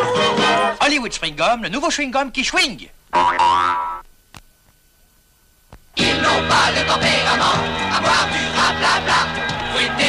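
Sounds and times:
springy boing rising in pitch: 3.2 - 4.0.

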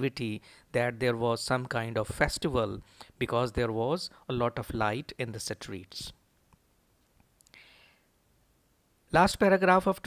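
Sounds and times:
man speaking: 0.0 - 6.2, 9.1 - 10.0
soft breathy hiss: 0.1 - 0.9, 2.0 - 9.3.

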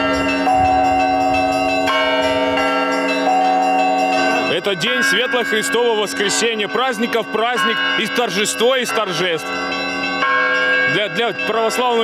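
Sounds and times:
church bells ringing: 0.0 - 12.0.

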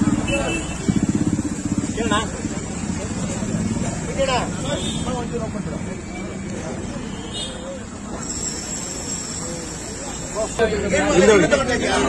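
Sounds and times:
motorcycle engine idling: 0.0 - 6.6.

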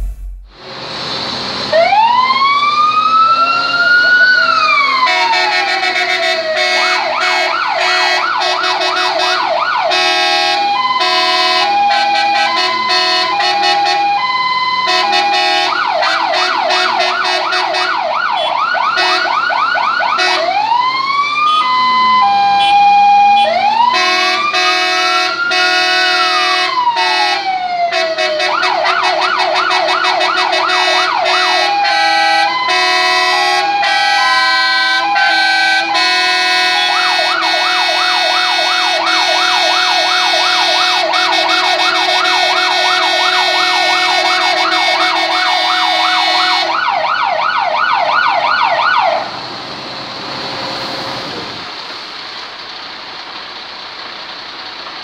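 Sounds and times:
steady lower tones: 0.0 - 1.0
fire engine sirens: 0.6 - 55.0.

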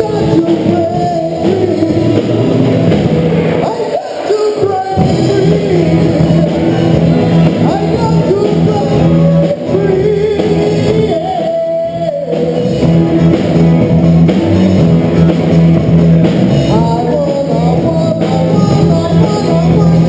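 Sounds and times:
vocals: 0.0 - 13.2, 16.5 - 20.0
bass line: 0.0 - 20.0
drum kit: 0.0 - 20.0
electric guitars: 0.0 - 20.0.

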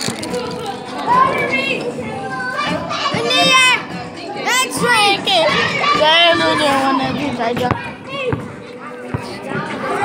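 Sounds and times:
children shouting: 0.2 - 7.1.

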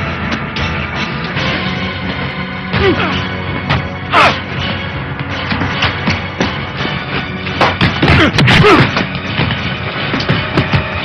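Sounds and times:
action film music with drums: 0.0 - 11.0.

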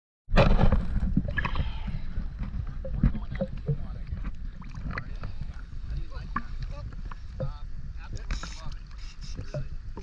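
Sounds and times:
low rumble: 0.3 - 8.3
small water splashes: 2.8 - 7.6.

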